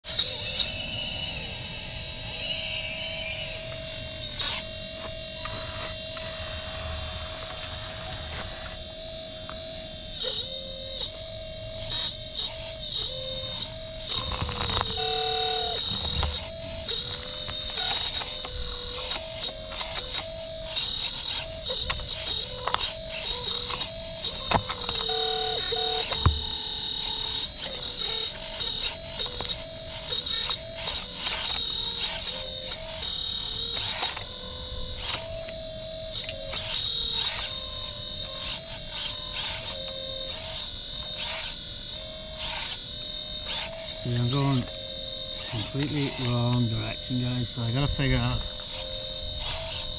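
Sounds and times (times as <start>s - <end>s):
hydraulic pump whining: 0.0s - 49.9s
sharp clicks: 11.8s - 34.3s.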